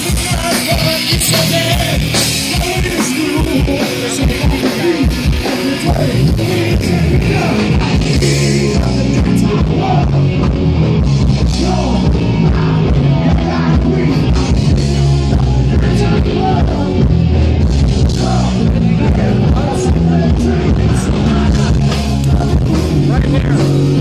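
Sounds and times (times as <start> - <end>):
rock band with guitar and singing: 0.0 - 24.0.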